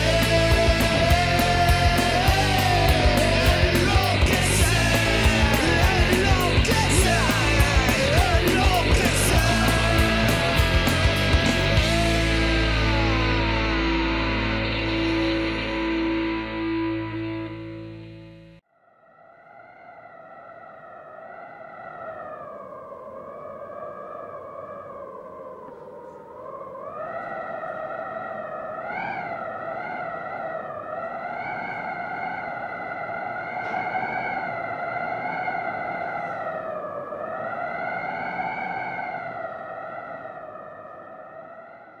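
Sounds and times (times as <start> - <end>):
wavering electronic tone: 9.4 - 21.6.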